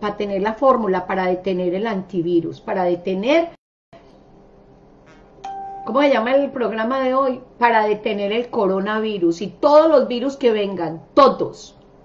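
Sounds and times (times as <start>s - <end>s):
electronic chime: 5.4s - 6.1s.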